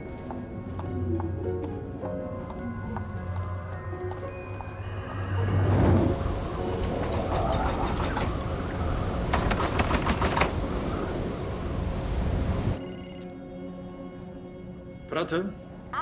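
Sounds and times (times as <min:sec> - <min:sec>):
soft music: 0:00.0 - 0:09.1, 0:11.5 - 0:16.0
snowstorm wind blowing: 0:05.3 - 0:12.8.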